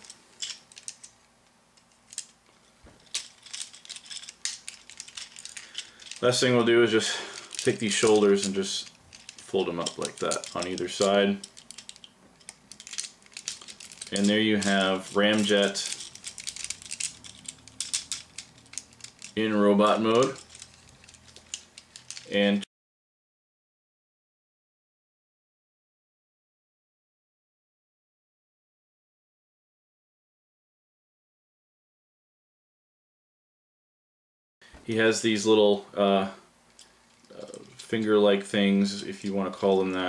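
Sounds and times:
plastic toy parts clicking: 0:00.0 - 0:01.1, 0:01.8 - 0:02.3, 0:03.0 - 0:06.4, 0:07.4 - 0:22.4.

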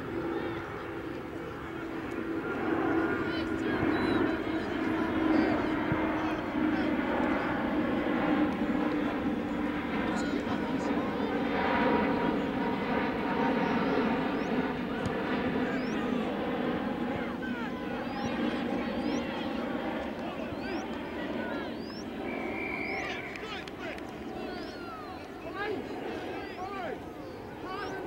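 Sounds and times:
voices calling out: 0:00.1 - 0:28.0.

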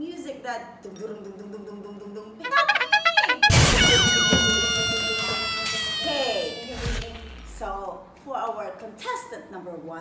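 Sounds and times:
brass fanfare: 0:02.4 - 0:06.6.

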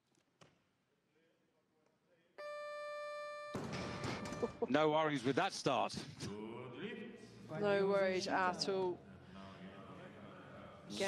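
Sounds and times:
electronic buzzer tone: 0:02.4 - 0:04.7.

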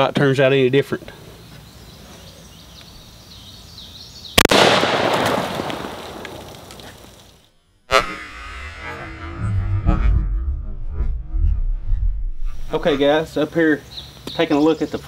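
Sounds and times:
shotgun firing: 0:04.4 - 0:06.7.

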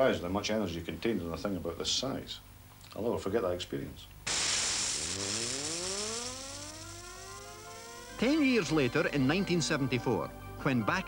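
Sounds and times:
gyroscope hiss: 0:04.2 - 0:09.6
rising gyroscope rotor whine: 0:04.3 - 0:09.3.

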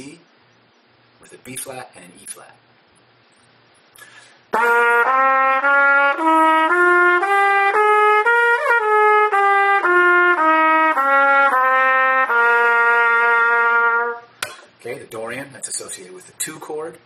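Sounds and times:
trumpet playing scale notes: 0:04.5 - 0:14.4.

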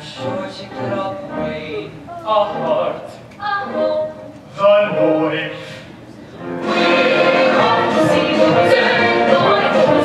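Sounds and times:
pit orchestra music: 0:02.4 - 0:05.6, 0:06.4 - 0:10.0.

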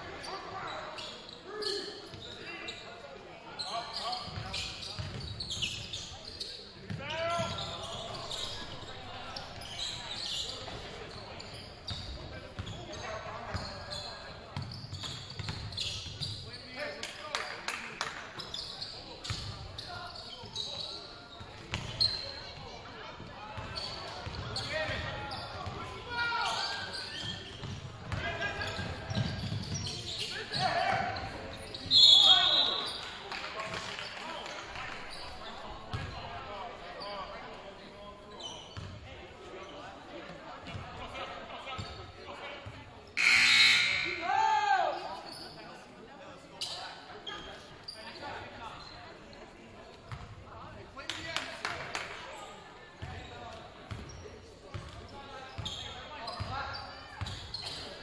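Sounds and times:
shouts echoing in hall: 0:30.3 - 0:35.8, 0:43.2 - 0:45.3
referee's whistle: 0:31.8 - 0:33.0, 0:43.2 - 0:44.4.

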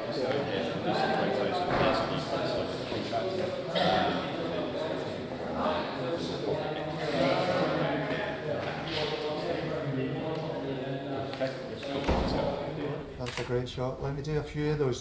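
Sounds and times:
men talking in echoing hall: 0:00.0 - 0:15.0.

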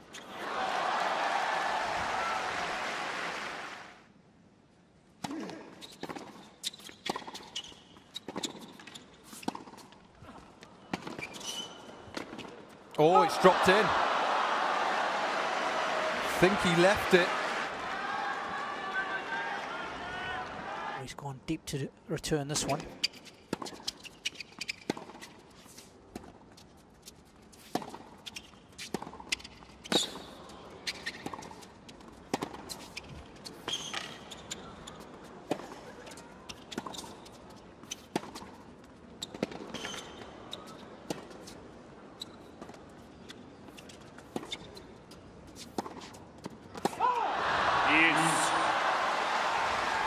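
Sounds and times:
faint arena hum: 0:00.0 - 0:24.3, 0:25.2 - 0:50.0
crowd noise: 0:00.3 - 0:04.0, 0:12.9 - 0:21.0, 0:46.9 - 0:50.0.

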